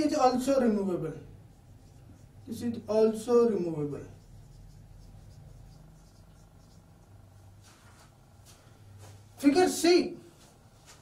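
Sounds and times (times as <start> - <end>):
low steady hum: 0.0 - 9.4
marker pen writing on whiteboard: 0.4 - 8.2.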